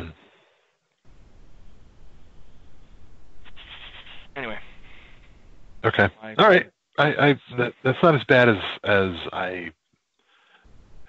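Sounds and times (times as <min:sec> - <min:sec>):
microphone hiss: 0:00.0 - 0:11.0
low hum: 0:01.1 - 0:09.4, 0:10.7 - 0:11.0
faint speech: 0:05.8 - 0:09.7.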